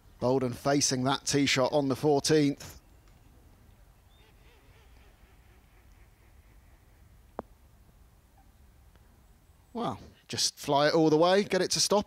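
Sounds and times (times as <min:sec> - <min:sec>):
distant bird calls: 0:02.4 - 0:10.3.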